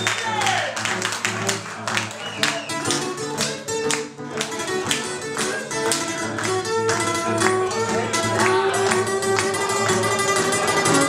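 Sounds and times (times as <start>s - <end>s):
acoustic guitars playing blues: 0.0s - 11.0s.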